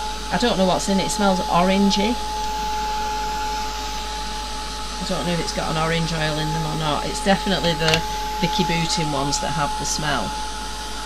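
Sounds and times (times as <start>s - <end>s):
heat gun fan whir: 0.0s - 11.0s.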